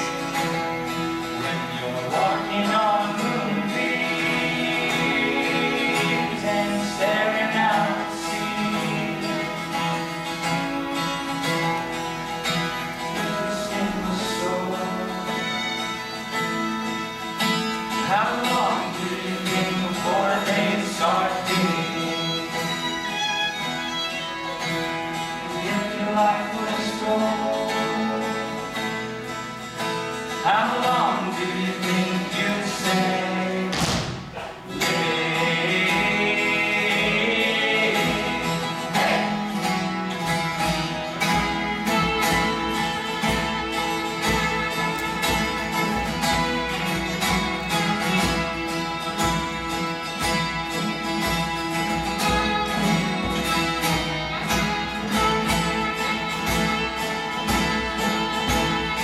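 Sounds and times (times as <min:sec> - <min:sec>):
acoustic guitar strumming: 0:00.0 - 0:59.0
background music: 0:00.0 - 0:59.0.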